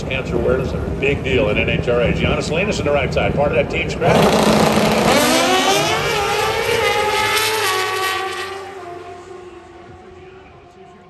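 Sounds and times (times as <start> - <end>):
motorcycles accelerating at full throttle: 0.0 - 11.0.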